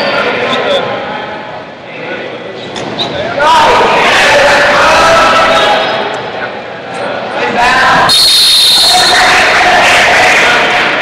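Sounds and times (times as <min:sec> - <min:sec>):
people yelling in echoing gym: 0:03.2 - 0:11.0
referee's whistle: 0:08.1 - 0:09.4.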